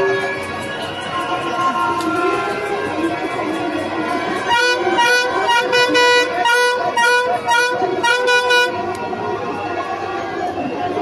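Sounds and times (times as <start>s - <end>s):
crowd noise: 0.0s - 11.0s
horn honking short blasts: 4.5s - 8.8s.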